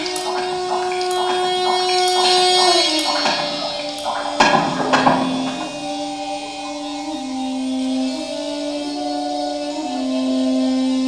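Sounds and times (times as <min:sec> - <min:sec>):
sharp knocks: 0:00.0 - 0:06.3
low drone: 0:00.0 - 0:11.0.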